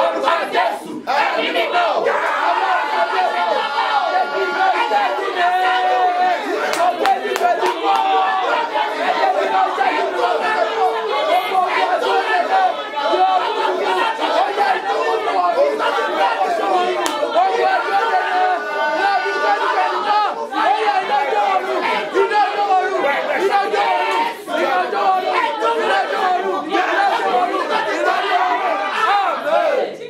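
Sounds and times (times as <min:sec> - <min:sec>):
congregation praying aloud: 0:00.0 - 0:30.0.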